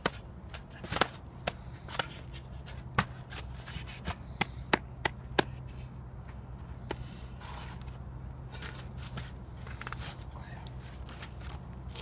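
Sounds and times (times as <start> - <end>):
sharp slaps of gloved hands: 4.4 - 5.5.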